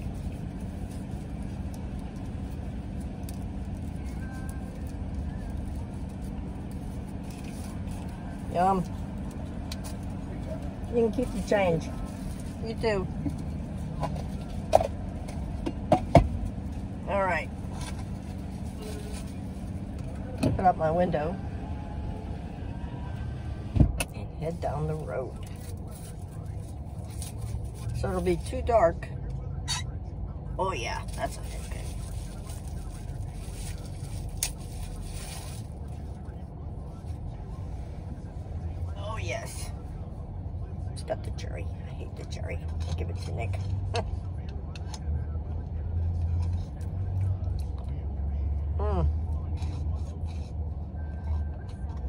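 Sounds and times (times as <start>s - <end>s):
rustling and handling noises: 0.0s - 20.4s, 31.0s - 37.9s
car engine idling: 0.0s - 52.0s.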